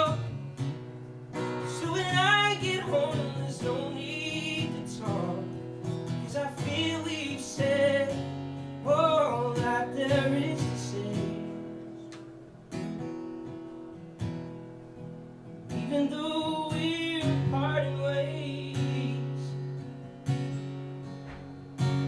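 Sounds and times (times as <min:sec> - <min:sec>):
man singing: 0:00.0 - 0:00.4, 0:01.6 - 0:11.8, 0:15.7 - 0:19.7
strummed acoustic guitar: 0:00.0 - 0:22.0.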